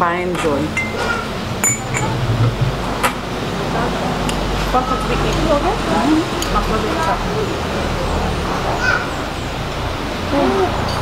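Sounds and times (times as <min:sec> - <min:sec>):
crystal glass clinking: 0:00.7 - 0:02.2.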